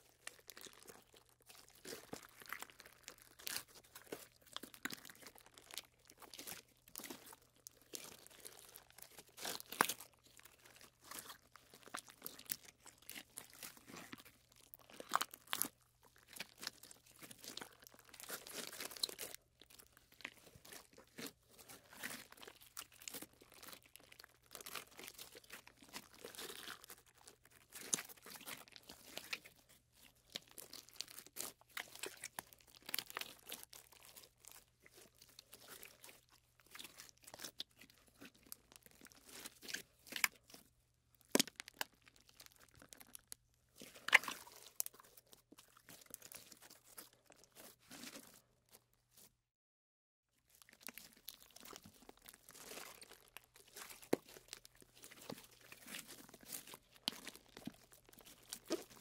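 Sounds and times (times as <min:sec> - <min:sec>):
slime squishing and popping: 0:00.0 - 0:48.4, 0:50.5 - 0:59.0.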